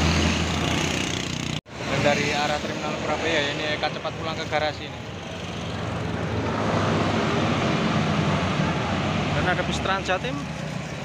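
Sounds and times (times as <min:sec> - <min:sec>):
road traffic noise: 0:00.0 - 0:11.0.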